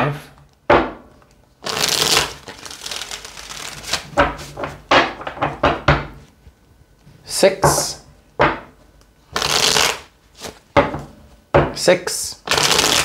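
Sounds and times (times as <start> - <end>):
cards rustling while shuffled: 1.6 - 4.6.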